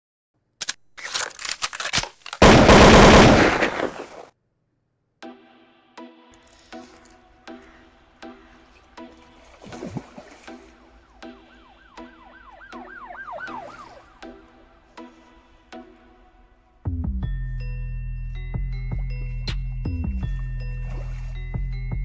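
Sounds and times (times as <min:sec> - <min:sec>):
rapid sharp cracks: 0:00.6 - 0:04.3
music with steady beat: 0:16.8 - 0:22.0.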